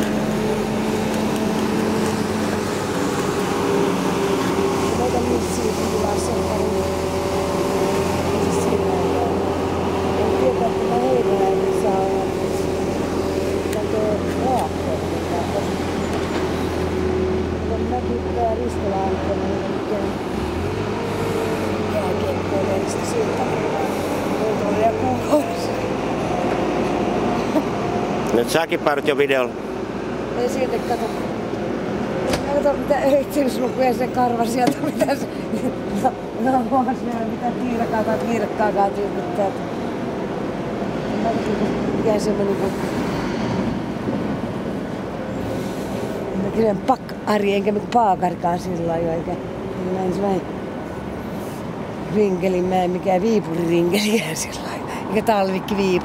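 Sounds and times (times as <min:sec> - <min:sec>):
vehicle engine running with whine: 0:00.0 - 0:46.7.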